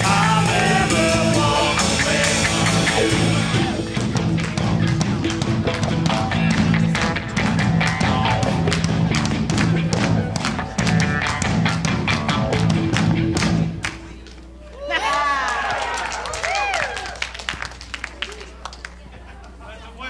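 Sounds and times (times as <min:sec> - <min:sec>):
live rock band playing: 0:00.0 - 0:14.2.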